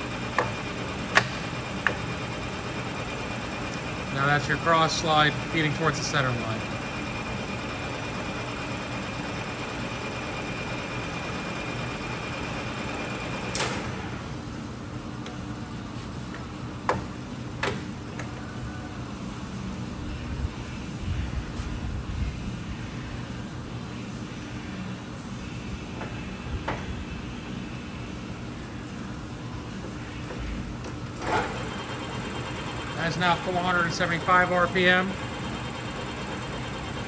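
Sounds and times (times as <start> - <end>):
lathe running with steady hum: 0.0 - 21.6, 27.1 - 37.0.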